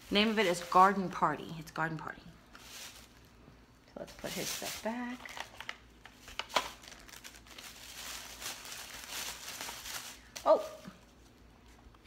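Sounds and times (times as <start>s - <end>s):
plastic bags crinkling and rustling: 2.5s - 3.4s, 4.0s - 11.3s
sharp plastic crackle: 4.2s - 10.8s.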